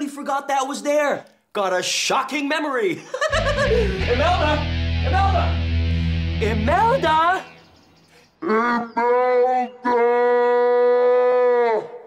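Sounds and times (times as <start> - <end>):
man yelling: 3.9 - 5.7, 6.4 - 7.5.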